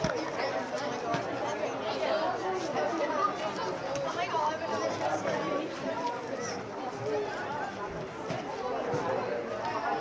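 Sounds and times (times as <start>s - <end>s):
many voices calling and shouting: 0.0s - 10.0s.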